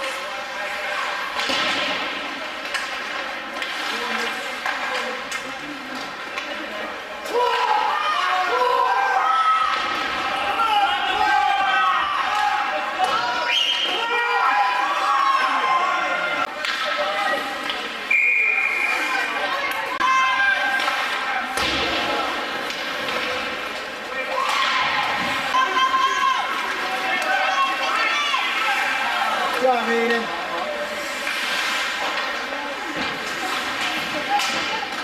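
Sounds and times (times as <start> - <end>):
hockey puck crack: 0.0 - 6.7, 16.4 - 17.9, 19.6 - 35.0
skates scraping ice: 0.0 - 7.8, 16.4 - 35.0
crowd and players shouting: 6.9 - 32.4.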